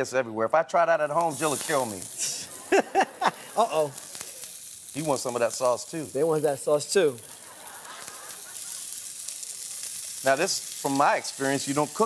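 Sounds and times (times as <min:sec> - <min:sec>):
prawns sizzling in hot oil: 0:01.1 - 0:12.0.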